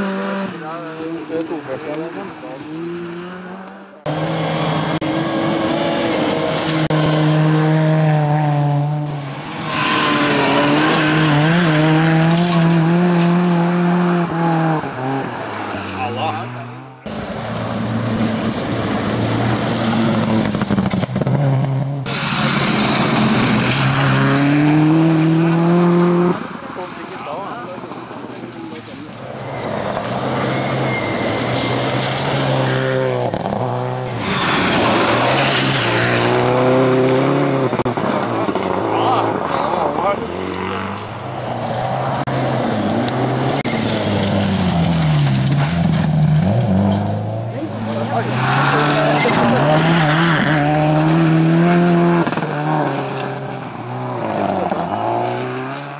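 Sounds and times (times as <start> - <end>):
rally car engines revving: 0.0 - 55.9.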